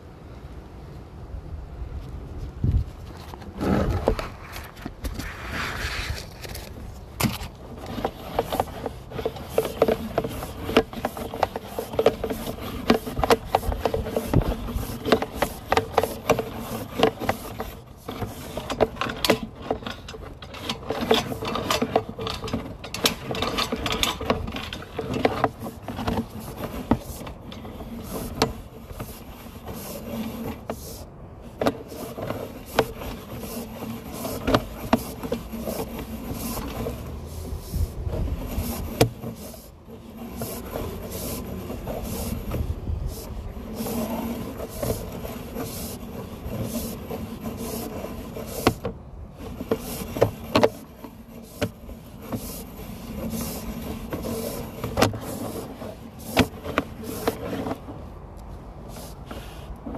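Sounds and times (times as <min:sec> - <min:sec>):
cable rubbing rumble: 0:02.3 - 0:59.9.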